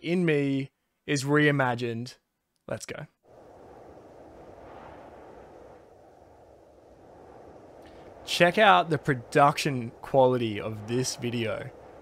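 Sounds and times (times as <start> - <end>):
faint muffled steady noise: 0.0 - 12.0.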